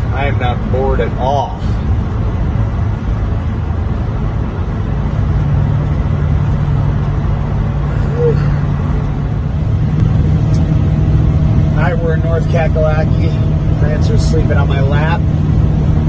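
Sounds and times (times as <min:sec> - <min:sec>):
low hum: 0:00.0 - 0:16.0
road noise: 0:00.0 - 0:16.0
truck engine drone: 0:00.0 - 0:16.0.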